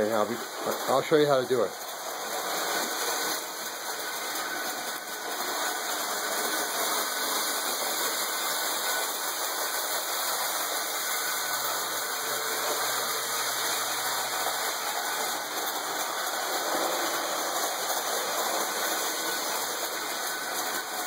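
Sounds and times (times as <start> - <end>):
toy train whirring on metal track: 0.0 - 21.0.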